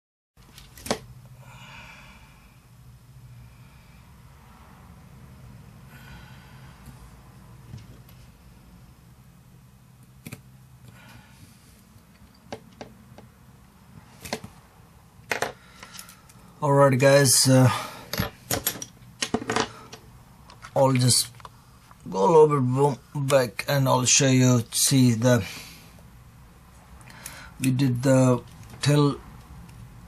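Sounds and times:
low steady hum: 0:00.4 - 0:30.0.

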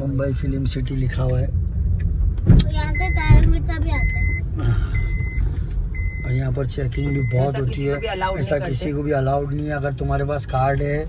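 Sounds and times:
car cabin rumble: 0:00.0 - 0:11.0
high electronic beep: 0:02.9 - 0:03.4, 0:04.0 - 0:08.7.

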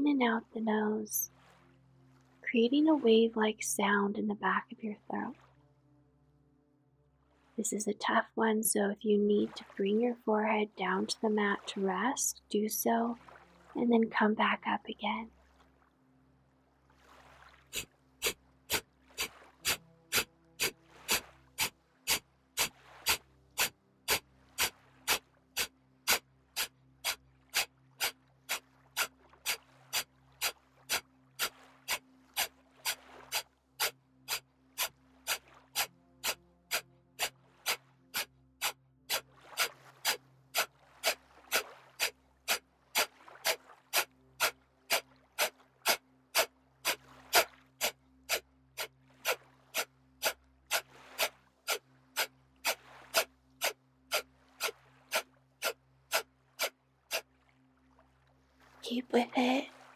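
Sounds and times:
forceful nasal exhalations: 0:18.2 - 0:30.5, 0:39.6 - 0:46.5, 0:50.2 - 0:57.2.

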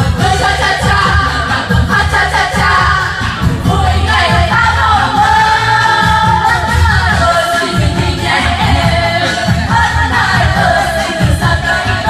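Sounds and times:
cha-cha-cha backing track: 0:00.0 - 0:12.0
woman singing karaoke: 0:00.0 - 0:12.0.

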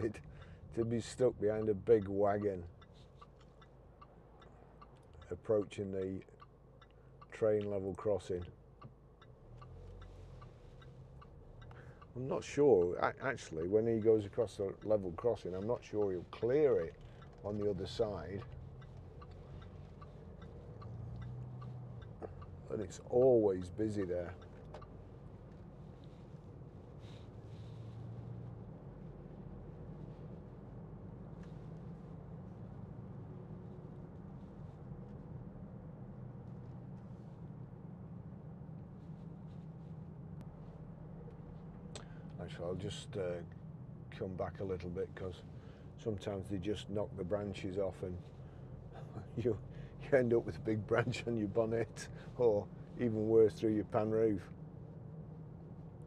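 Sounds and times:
low hum of engine and road: 0:00.0 - 0:56.0
car indicator clicking: 0:00.1 - 0:26.1.

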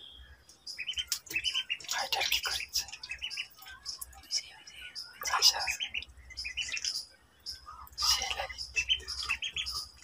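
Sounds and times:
ducklings peeping: 0:00.0 - 0:10.0.

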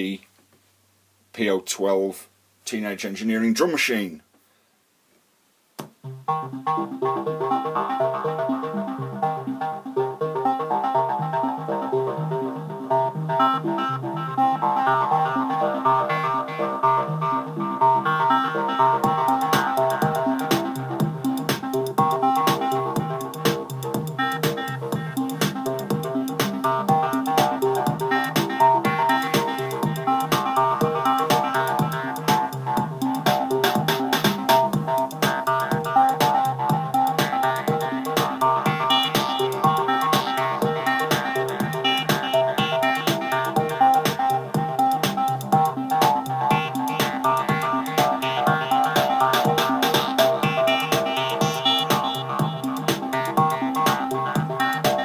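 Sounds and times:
square-wave synth sequence: 0:06.0 - 0:55.0
drum machine beat: 0:18.2 - 0:55.0.

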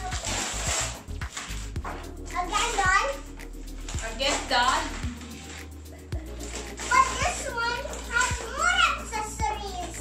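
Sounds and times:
background music: 0:00.0 - 0:10.0
girl and woman talking excitedly: 0:02.2 - 0:05.1, 0:06.2 - 0:10.0.

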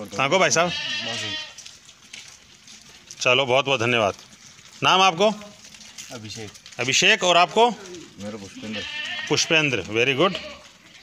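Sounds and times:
sheep bleating: 0:00.1 - 0:01.8, 0:07.3 - 0:11.0.

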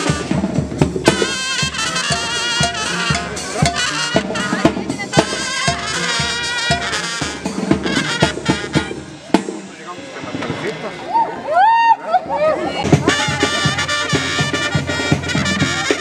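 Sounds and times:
drum beat: 0:00.0 - 0:10.6, 0:12.8 - 0:16.0
brass band music: 0:00.0 - 0:11.4, 0:12.8 - 0:16.0.

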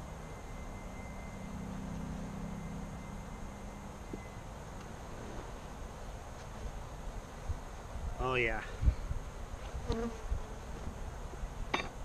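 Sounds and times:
honeybees buzzing: 0:09.3 - 0:11.6
bee passing close by: 0:09.6 - 0:11.2.

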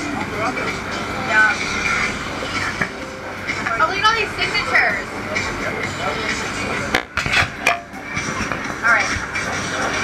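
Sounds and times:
people talking indistinctly: 0:00.0 - 0:10.0
steady background hum: 0:00.0 - 0:10.0.

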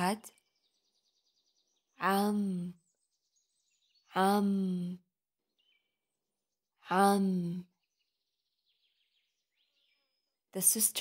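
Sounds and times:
woman speaking: 0:00.0 - 0:00.3, 0:02.0 - 0:02.8, 0:04.2 - 0:05.0, 0:06.9 - 0:07.7, 0:10.6 - 0:11.0.

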